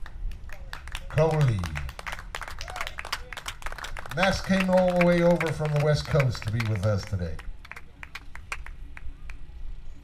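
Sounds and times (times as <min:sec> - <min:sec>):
scattered handclaps: 0:00.0 - 0:09.4.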